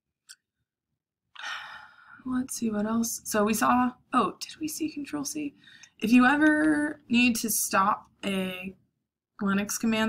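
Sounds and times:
woman speaking: 0:02.2 - 0:08.8, 0:09.4 - 0:10.0.

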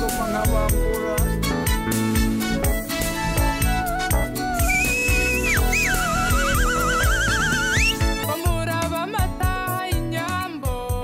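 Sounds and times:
high lead melody with vibrato: 0:00.0 - 0:08.4
steady drum beat: 0:00.0 - 0:08.7.

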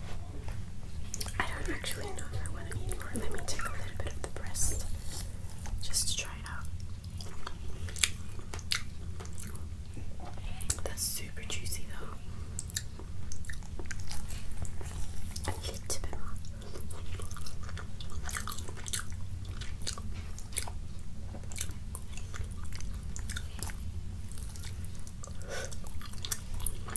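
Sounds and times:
chewing and mouth sounds: 0:01.0 - 0:05.8, 0:06.7 - 0:10.8, 0:12.5 - 0:26.9.

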